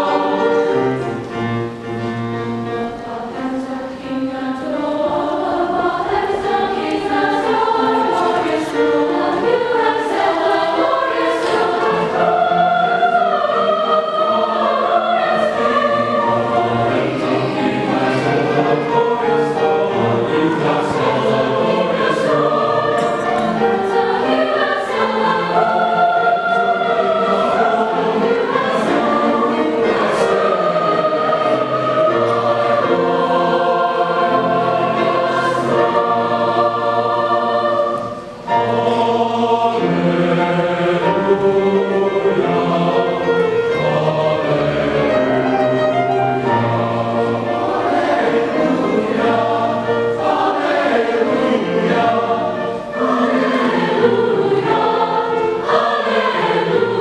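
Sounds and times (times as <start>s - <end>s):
mixed choir singing: 0.0s - 57.0s.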